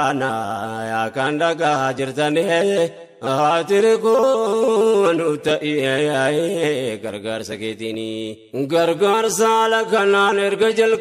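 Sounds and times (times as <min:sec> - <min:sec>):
man chanting devotional song: 0:00.0 - 0:11.0.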